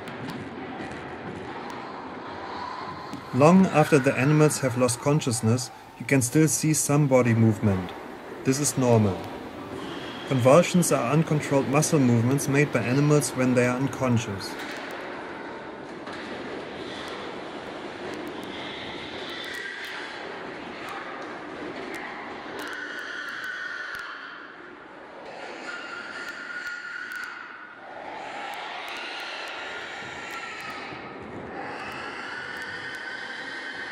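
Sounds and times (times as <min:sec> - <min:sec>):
pigs screaming: 0:02.3 - 0:14.8, 0:18.1 - 0:20.6, 0:22.0 - 0:33.9
machinery noise: 0:02.9 - 0:14.7.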